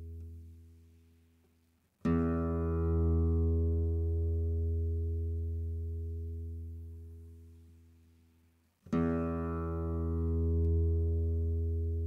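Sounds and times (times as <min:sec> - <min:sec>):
guitar notes ringing: 0:08.9 - 0:12.0.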